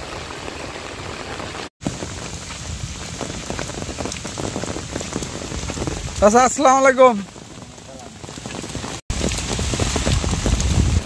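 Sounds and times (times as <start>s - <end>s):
steady rain hiss: 0.0s - 11.0s.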